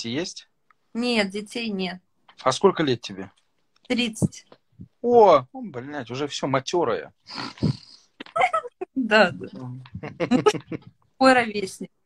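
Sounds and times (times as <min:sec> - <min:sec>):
person laughing: 0:09.9 - 0:11.0.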